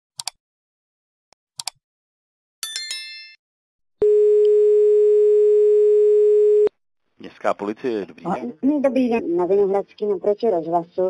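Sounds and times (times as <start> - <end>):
notification bell chime: 2.6 - 3.4.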